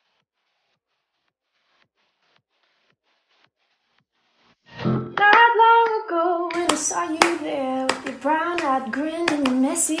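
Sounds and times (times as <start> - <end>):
sharp hand claps: 5.2 - 10.0
woman singing unaccompanied: 5.2 - 10.0.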